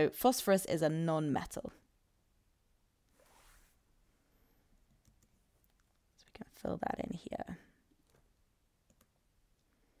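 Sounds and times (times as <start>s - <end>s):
computer mouse clicks: 8.0s - 9.7s.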